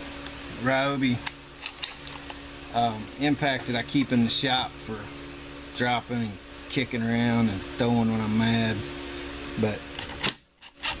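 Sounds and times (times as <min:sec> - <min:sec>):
fan hum: 0:00.0 - 0:11.0
impact driver rasping bursts: 0:10.0 - 0:11.0.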